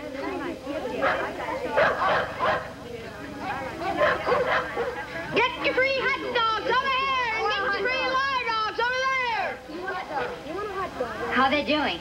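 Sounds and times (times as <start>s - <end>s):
voices: 0.0s - 12.0s
dogs barking: 1.0s - 2.8s, 3.9s - 5.1s, 10.1s - 10.4s.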